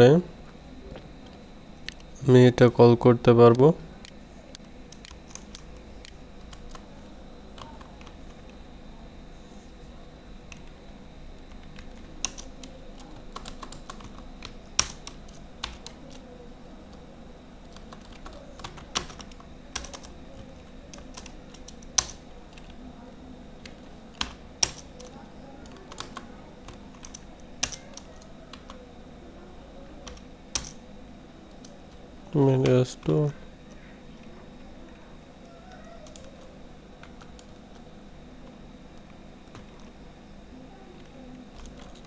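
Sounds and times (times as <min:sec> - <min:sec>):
faint background hum: 0:00.0 - 0:42.0
keyboard typing: 0:03.5 - 0:08.6, 0:11.4 - 0:22.9, 0:23.6 - 0:28.8, 0:30.0 - 0:30.8, 0:35.4 - 0:37.9, 0:41.0 - 0:42.0.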